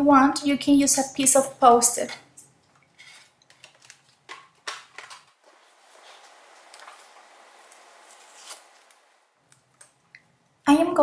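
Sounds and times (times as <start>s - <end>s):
craft supplies clicking and rustling: 3.1s - 5.4s
faint steady hiss: 5.0s - 11.0s.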